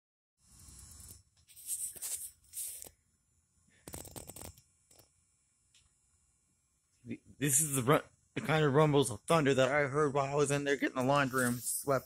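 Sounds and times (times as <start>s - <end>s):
phone handling rubbing and rustling: 1.4s - 2.9s, 3.8s - 5.1s.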